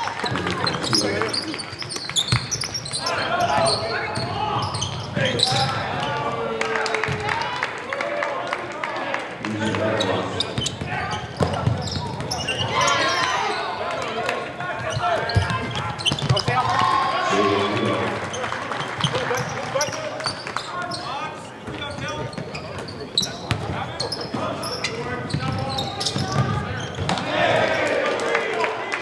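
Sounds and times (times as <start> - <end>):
basketball bouncing on court: 1.6 - 5.8, 10.5 - 12.6, 14.8 - 16.8, 21.6 - 27.2
voices calling out: 2.6 - 29.0.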